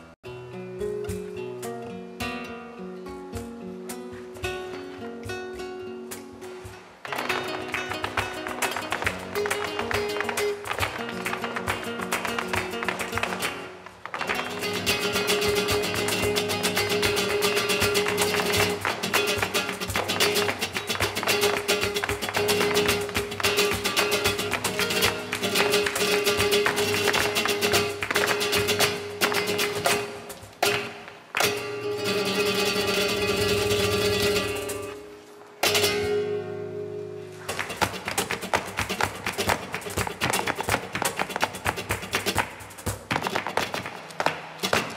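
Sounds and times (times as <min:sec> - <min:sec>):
loud flamenco music: 0:00.8 - 0:44.9.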